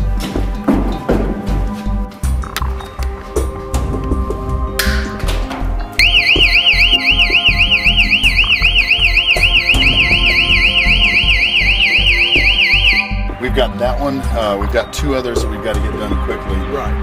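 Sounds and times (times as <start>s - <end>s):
background music with steady beat: 0.0s - 17.0s
electronic warbling alarm siren: 6.0s - 13.3s.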